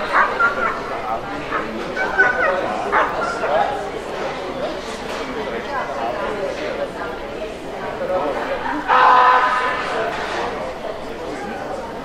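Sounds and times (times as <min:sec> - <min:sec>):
dog barking and yelping: 0:00.0 - 0:03.5
people talking: 0:00.0 - 0:12.0.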